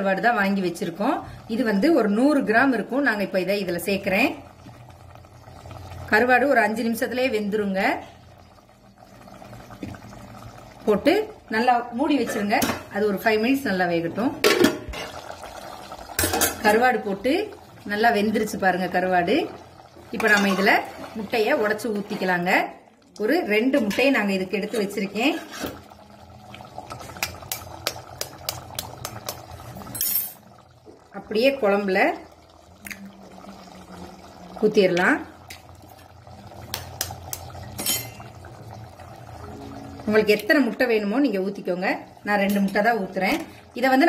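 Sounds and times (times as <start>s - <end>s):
curry bubbling in a pot: 0.0s - 44.0s
egg tapping on pot rim: 27.1s - 29.4s, 36.7s - 37.9s.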